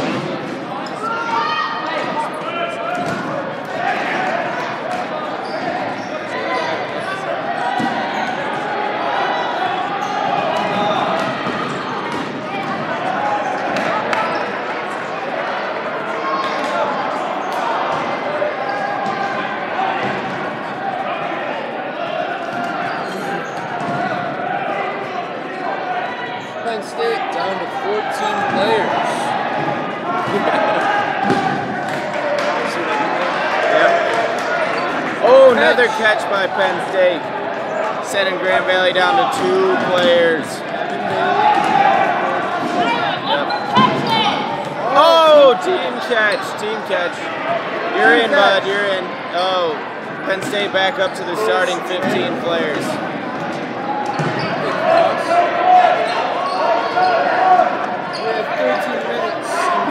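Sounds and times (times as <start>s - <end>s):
many voices shouting: 0.0s - 38.1s, 38.9s - 50.2s, 51.6s - 59.9s
balls bouncing on hard floor: 3.0s - 3.3s, 10.6s - 12.9s, 53.4s - 54.5s
balls smacking players: 28.4s - 32.9s.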